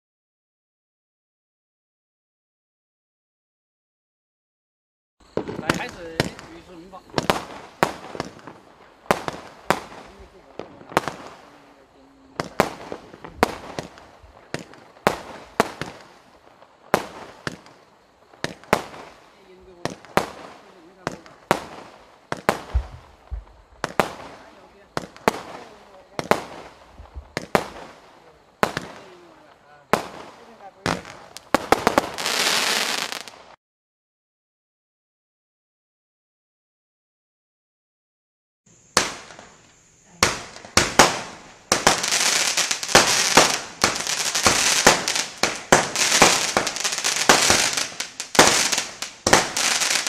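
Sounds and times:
firework shots thumping and bursting: 5.4 - 11.6, 12.4 - 16.2, 16.9 - 17.8, 18.4 - 19.1, 19.8 - 29.2, 29.9 - 33.1, 38.9 - 39.6, 40.2 - 50.0.

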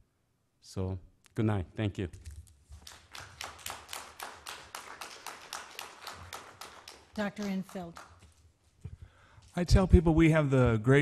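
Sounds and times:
hand clapping: 2.7 - 8.4.

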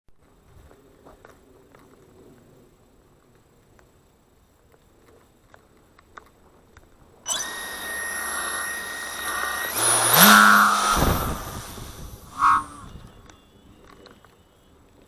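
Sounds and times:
electric motor and propeller whine: 7.3 - 14.7.

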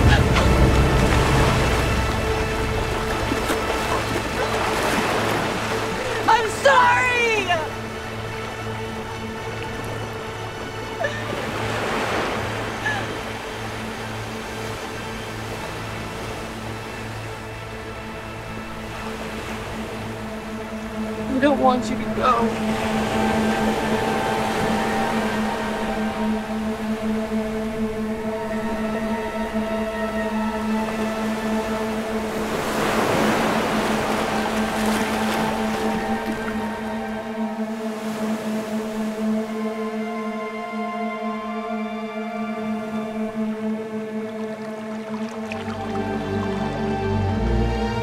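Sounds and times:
dark sustained drone: 7.7 - 48.0.

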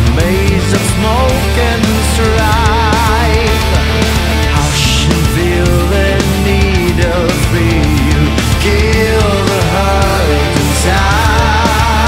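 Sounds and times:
drum hits: 0.0 - 12.0
loud metal band: 0.0 - 12.0
melodic lead line with vibrato: 0.0 - 12.0.

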